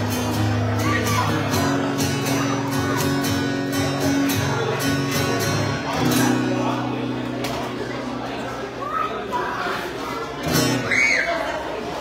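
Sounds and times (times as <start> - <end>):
acoustic guitar strumming: 0.0 - 8.8, 10.4 - 10.9.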